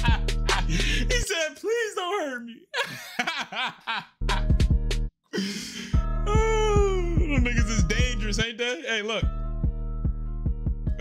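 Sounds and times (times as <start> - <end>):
man laughing hard: 0.0 - 1.2, 2.7 - 4.6.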